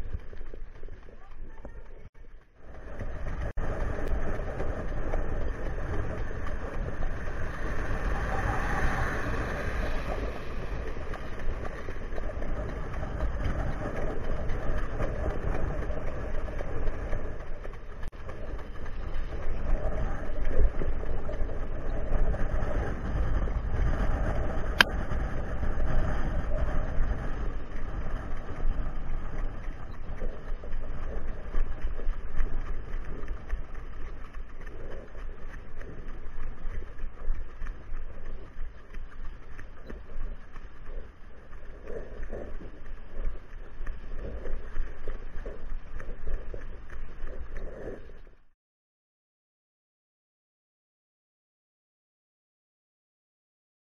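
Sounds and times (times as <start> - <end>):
wind buffeting microphone: 0.0 - 48.4
cart wheels rumbling on dirt: 0.0 - 48.5.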